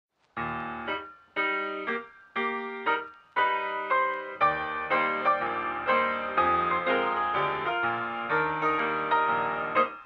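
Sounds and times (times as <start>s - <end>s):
solo piano chords: 0.4s - 10.0s.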